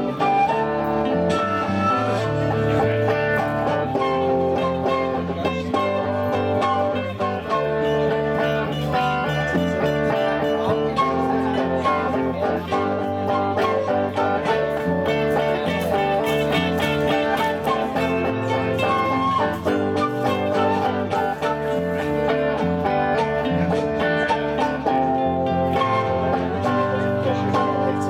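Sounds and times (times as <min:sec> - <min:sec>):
flute melody: 0:00.0 - 0:28.0
strummed guitars: 0:00.0 - 0:28.0.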